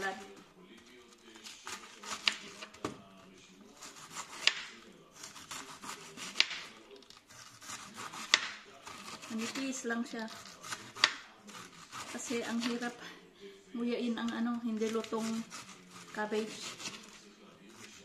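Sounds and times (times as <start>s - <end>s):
knife slicing cabbage: 1.3s - 3.0s, 3.8s - 13.0s, 14.8s - 18.0s.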